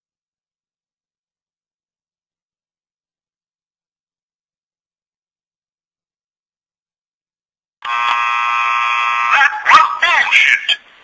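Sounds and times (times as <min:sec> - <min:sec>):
electronic buzzing tone: 0:07.8 - 0:09.4.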